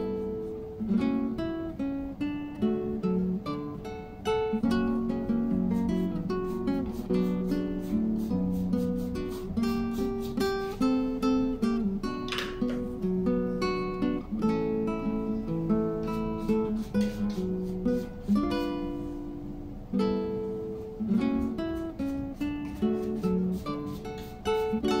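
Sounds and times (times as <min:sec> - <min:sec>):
acoustic guitar plucking: 0:00.0 - 0:25.0.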